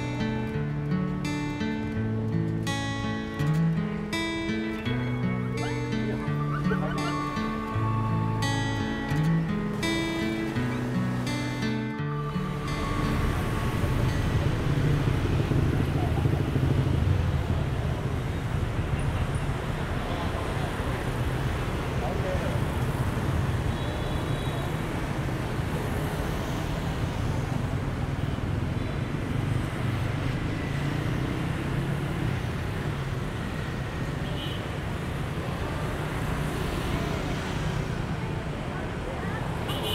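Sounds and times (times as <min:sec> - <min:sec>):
traffic rumble: 0:00.0 - 0:39.9
crowd voices: 0:04.8 - 0:11.4.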